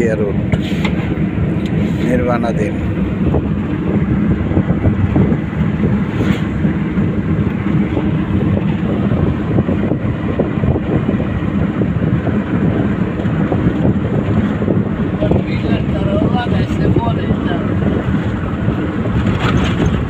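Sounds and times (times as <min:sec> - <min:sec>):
knocks and rattles in vehicle: 0:00.0 - 0:20.0
vehicle engine and tyre rumble: 0:00.0 - 0:20.0.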